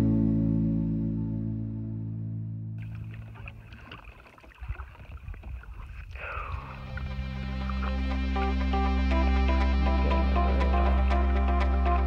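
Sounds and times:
water splashing and dripping: 0:02.8 - 0:08.6
paddle pulling through water: 0:02.8 - 0:09.0.

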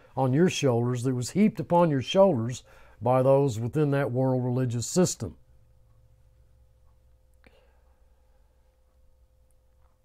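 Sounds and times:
low electrical hum: 0:00.0 - 0:10.0
faint breath sound: 0:02.6 - 0:03.0, 0:07.4 - 0:08.7.

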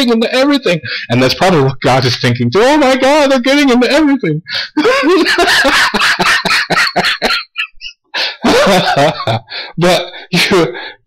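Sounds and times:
man laughing: 0:04.5 - 0:10.9.

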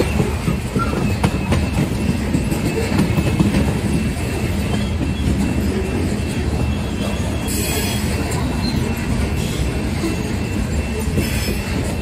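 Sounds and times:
train wheels rumbling on rail: 0:00.0 - 0:12.0.

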